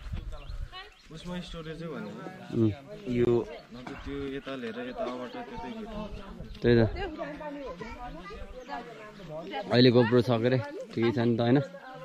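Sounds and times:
voices chattering quietly: 0.0s - 12.0s
child talking: 7.2s - 8.9s.

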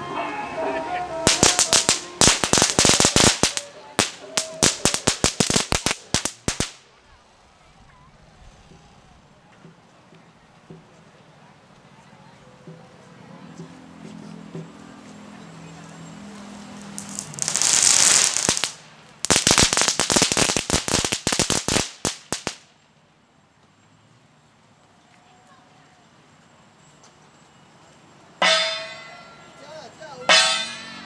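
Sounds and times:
firecrackers popping rapidly: 1.2s - 7.0s, 16.8s - 22.8s
brass hand cymbals crash: 1.3s - 6.8s
loud hiss: 1.3s - 6.9s, 16.8s - 22.7s.

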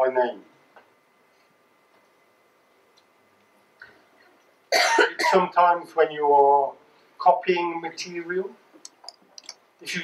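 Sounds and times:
man coughing: 4.7s - 5.5s.

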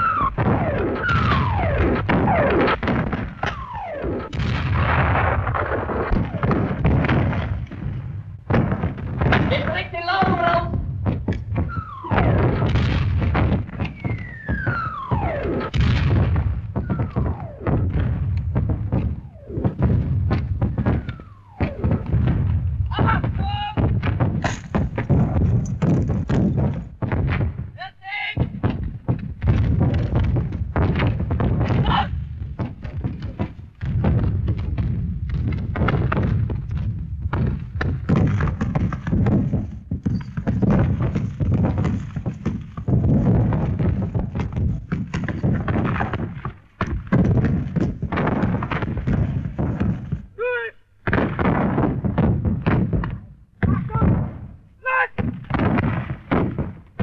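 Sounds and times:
artillery shells whistling: 0.0s - 46.7s
continuous gunfire: 0.0s - 50.4s, 51.1s - 54.6s, 55.2s - 57.0s
shell explosions: 0.0s - 57.0s.

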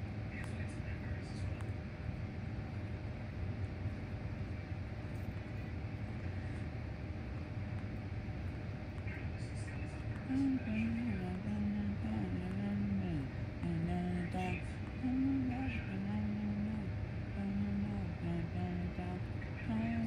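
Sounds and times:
steady low rumble: 0.0s - 20.0s
faint indistinct voices: 0.1s - 2.4s, 8.9s - 13.1s.

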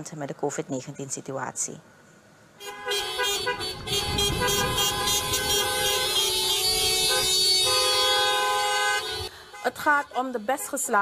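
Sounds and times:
car horns honking: 2.6s - 11.0s.

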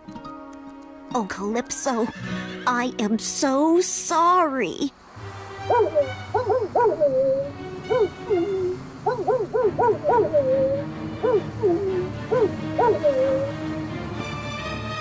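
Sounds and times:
faint music: 0.0s - 15.0s
low rush of wind: 4.9s - 15.0s
cartoon dog barking: 5.7s - 13.5s
dog whining: 5.7s - 13.6s.

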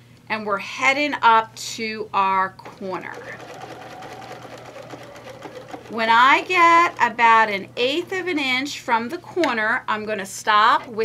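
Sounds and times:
electric sewing machine stitching: 2.6s - 8.8s.

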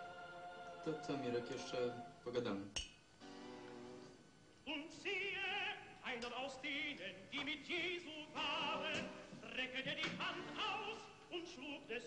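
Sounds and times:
operatic singing with music: 4.7s - 12.0s.

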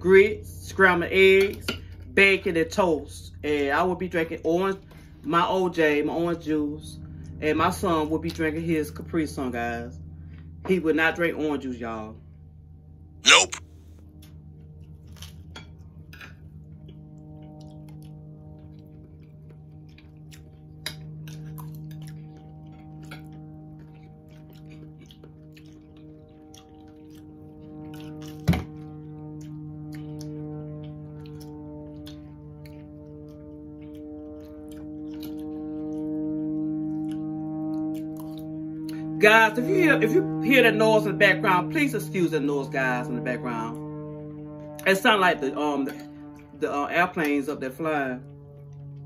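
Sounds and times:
soft chewing: 15.0s - 15.5s, 17.0s - 28.4s, 29.2s - 36.1s
low droning tones: 16.5s - 49.0s.

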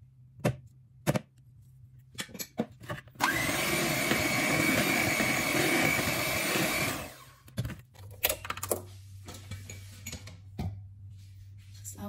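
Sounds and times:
electric hand mixer whining: 3.2s - 7.4s.

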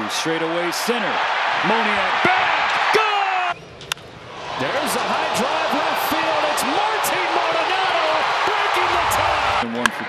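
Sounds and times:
crowd roaring: 0.9s - 3.6s, 4.3s - 10.0s
individual shouts: 2.9s - 3.6s.

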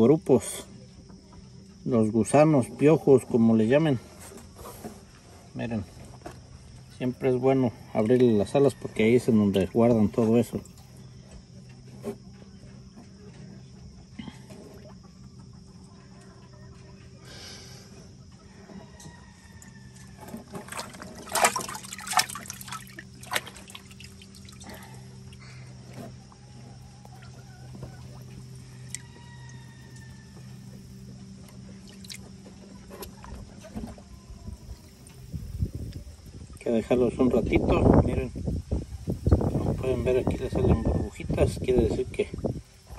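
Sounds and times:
water sloshing and splashing: 19.3s - 36.7s.

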